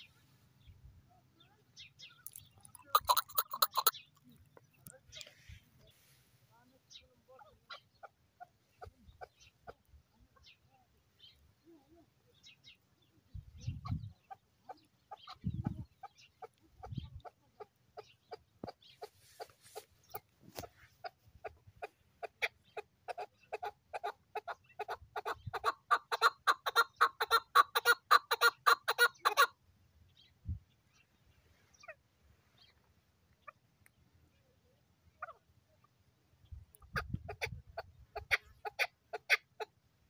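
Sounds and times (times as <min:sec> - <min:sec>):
partridge clucking call: 0:02.0 - 0:05.9, 0:13.7 - 0:29.6, 0:36.7 - 0:39.8.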